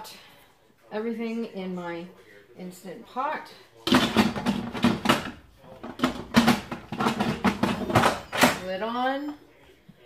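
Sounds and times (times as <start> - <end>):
pot lid clattering and scraping: 3.9 - 8.6.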